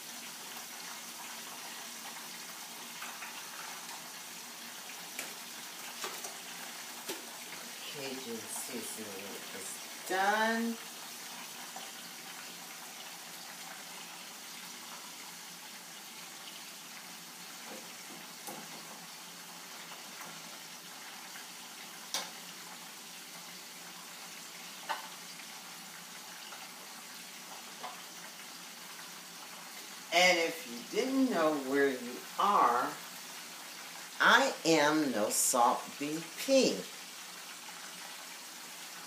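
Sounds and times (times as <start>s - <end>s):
fish frying in oil: 0.0s - 39.0s.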